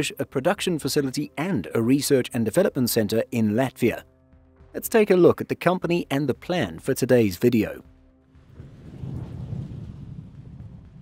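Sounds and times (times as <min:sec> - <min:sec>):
low rumble: 0:07.9 - 0:11.0.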